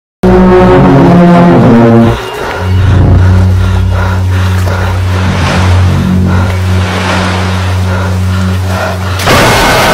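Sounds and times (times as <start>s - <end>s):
low droning hum: 0.2s - 9.9s
rough sea rushing: 2.0s - 9.9s.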